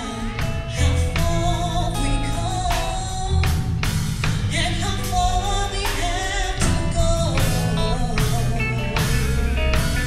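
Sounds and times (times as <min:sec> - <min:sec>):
drum hits: 0:00.0 - 0:10.0
live gospel band: 0:00.0 - 0:10.0
woman singing into a microphone: 0:00.0 - 0:10.0.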